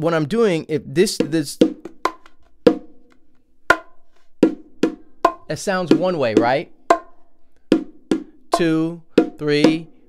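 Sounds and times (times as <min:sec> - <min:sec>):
bongo strokes: 0:01.2 - 0:10.0.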